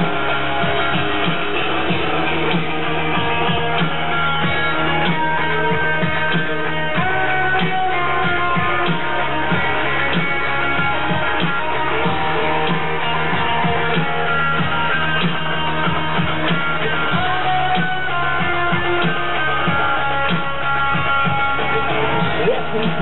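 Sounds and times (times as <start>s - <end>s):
live ska-rock band music: 0.0s - 23.0s.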